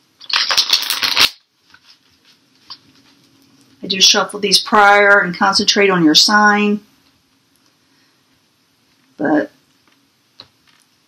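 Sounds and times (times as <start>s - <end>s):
cards riffle shuffling: 0.2s - 2.8s.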